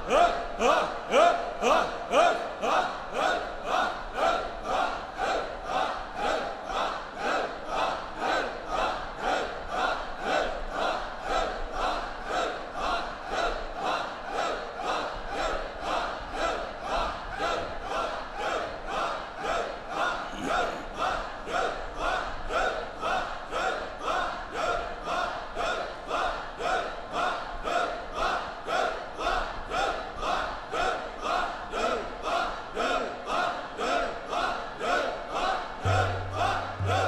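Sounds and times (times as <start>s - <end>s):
men chanting in unison: 0.0s - 37.0s
tabla: 35.8s - 37.0s.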